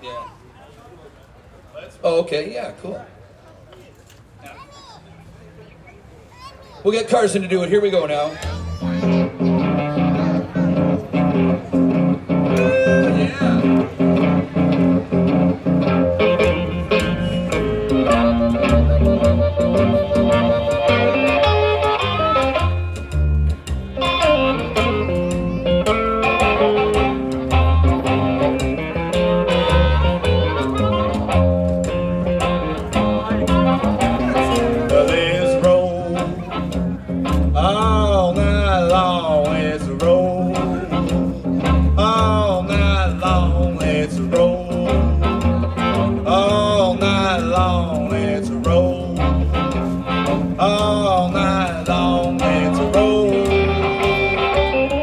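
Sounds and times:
electric guitar: 0:08.4 - 0:55.0
plucked upright bass: 0:08.4 - 0:55.0
harmonica: 0:08.6 - 0:23.4, 0:24.0 - 0:36.7
man singing: 0:12.5 - 0:13.9, 0:16.9 - 0:19.4, 0:33.2 - 0:54.8.

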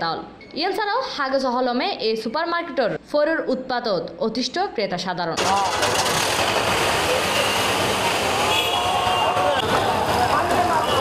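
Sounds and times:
woman narrating: 0:00.0 - 0:05.7
car engines running: 0:05.4 - 0:11.0
voices: 0:07.0 - 0:11.0.

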